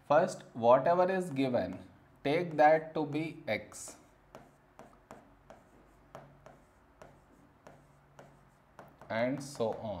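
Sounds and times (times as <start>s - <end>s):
stylus tapping on a screen: 3.9s - 9.9s.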